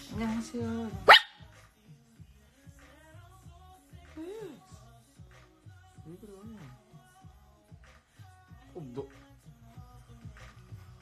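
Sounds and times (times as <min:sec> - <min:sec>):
small dog barking: 0:01.0 - 0:01.5.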